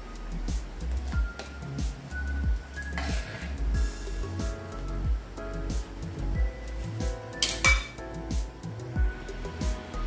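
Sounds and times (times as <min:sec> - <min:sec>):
background music with steady beat: 0:00.0 - 0:10.0
metal ladle clinking on pan: 0:07.4 - 0:08.0.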